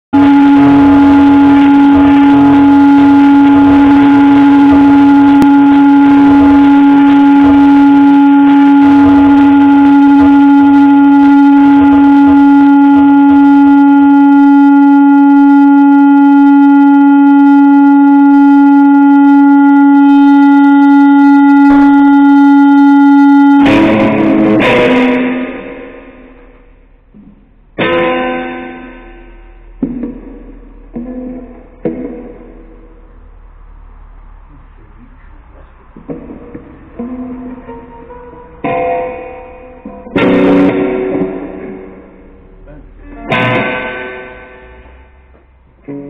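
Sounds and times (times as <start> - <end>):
electric guitar feedback tone: 0.1 - 46.0
low rumble: 0.2 - 46.0.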